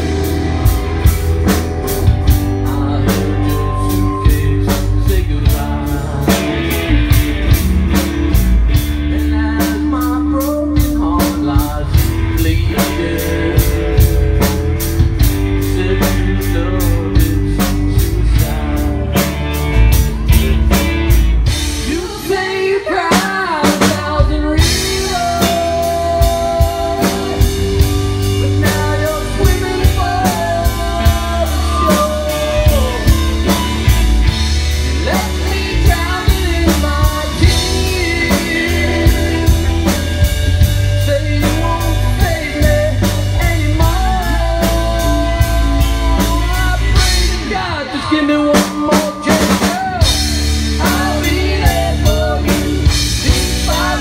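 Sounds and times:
drum kit with cymbals: 0.0 - 54.0
electric guitar: 0.0 - 54.0
man singing: 1.4 - 20.8, 21.5 - 54.0.

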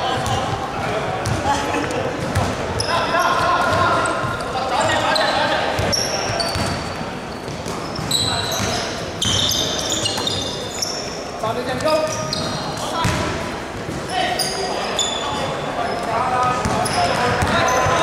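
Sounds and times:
sneakers squeaking on floor: 0.0 - 18.0
basketball bouncing: 1.2 - 1.5, 16.6 - 18.0.

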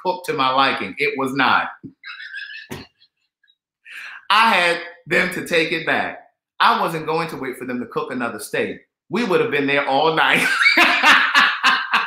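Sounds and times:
man's squeaky suppressed laugh: 2.0 - 3.2
short sharp breath: 3.9 - 4.3.

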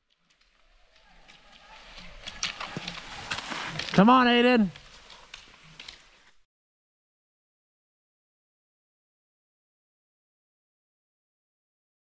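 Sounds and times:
ski poles clicking: 0.0 - 6.4
skis scraping on packed snow: 0.0 - 6.5.

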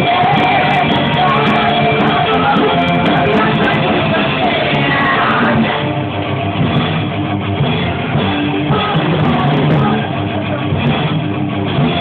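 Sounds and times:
electric guitar riffing: 0.0 - 12.0
metal band playing: 0.0 - 12.0.

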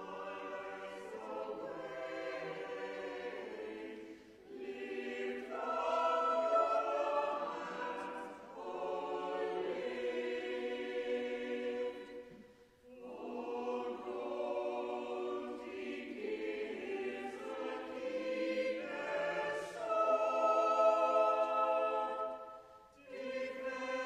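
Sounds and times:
church choir singing: 0.0 - 24.0.

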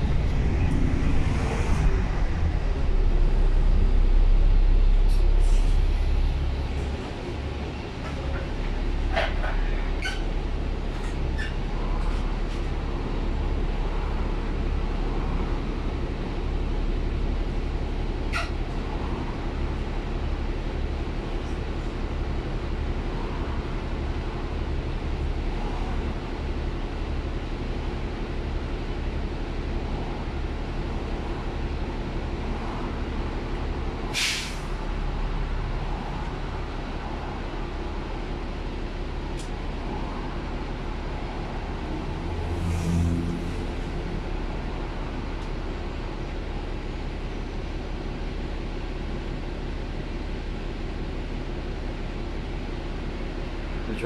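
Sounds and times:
bus diesel engine droning: 0.0 - 54.0
air release hiss: 34.1 - 34.7.

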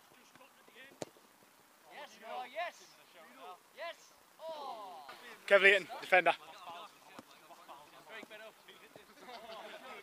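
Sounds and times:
men chatting: 1.8 - 10.0.

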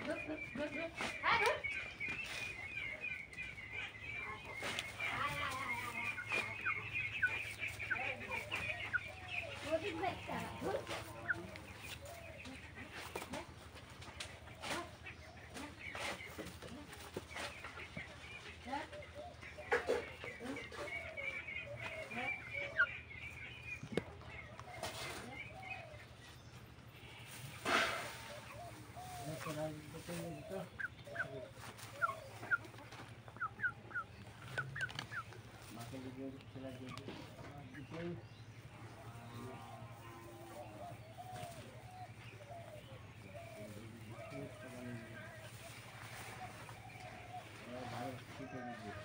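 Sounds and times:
chickens clucking: 0.0 - 49.0.

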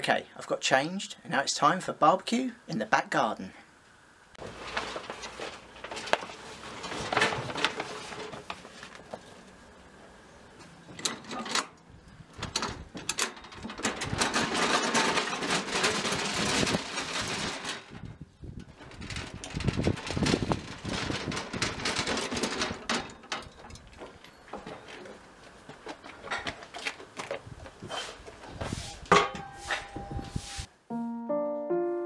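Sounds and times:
rustling and clatter of handling: 4.4 - 9.7, 12.4 - 30.2.

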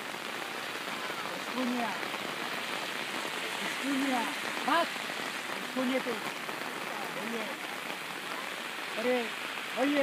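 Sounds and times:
rain pattering on umbrella: 0.0 - 10.0.

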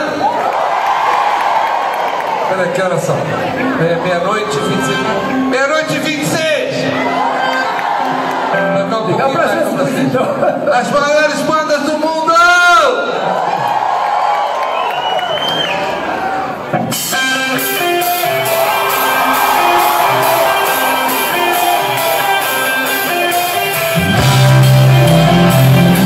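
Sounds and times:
audience voices and shouts: 0.0 - 26.0
live rock-pop band: 16.0 - 26.0
heavy bass and drums: 23.6 - 26.0.

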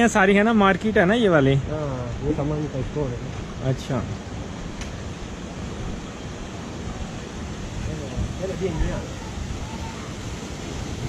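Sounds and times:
stream water flowing: 0.0 - 11.0
wind rumble on microphone: 0.7 - 11.0.

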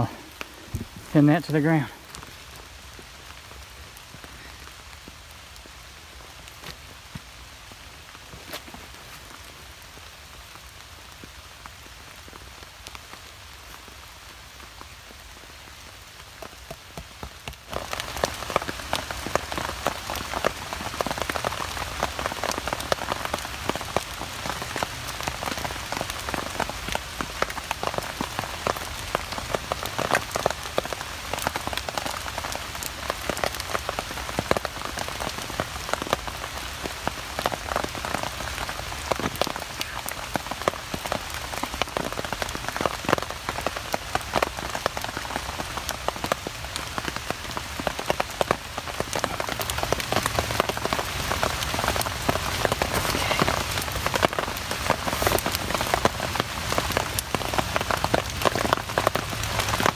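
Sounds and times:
heavy rain pattering on tarp: 0.0 - 59.9.

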